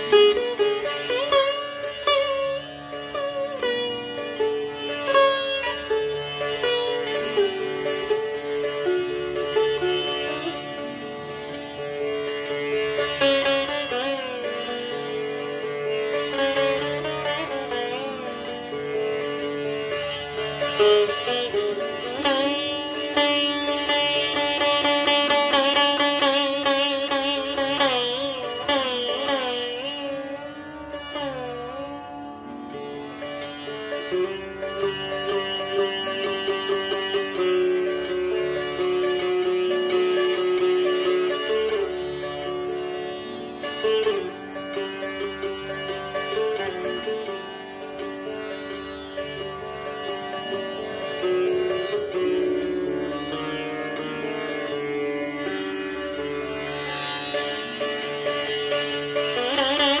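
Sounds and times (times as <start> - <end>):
solo sitar playing: 0.0 - 60.0.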